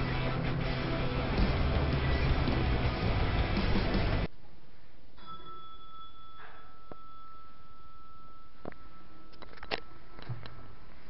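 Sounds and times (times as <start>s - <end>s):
background music: 0.0s - 4.3s.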